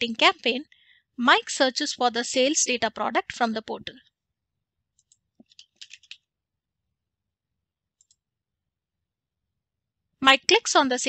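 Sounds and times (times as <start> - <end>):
faint computer mouse clicks: 8.0 - 8.2.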